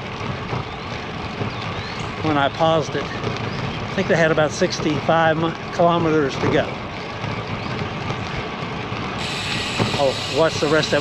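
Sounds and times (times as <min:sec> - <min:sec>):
bicycle tyres on concrete: 0:00.0 - 0:11.0.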